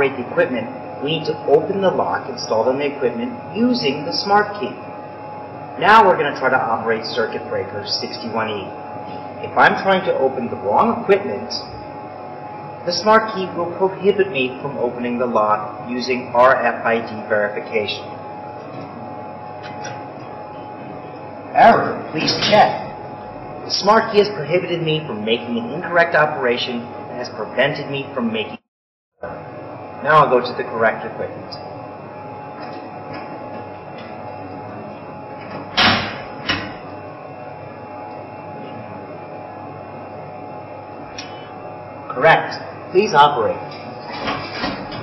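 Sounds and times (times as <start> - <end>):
background hiss and hum: 0.0 - 28.6, 29.2 - 45.0.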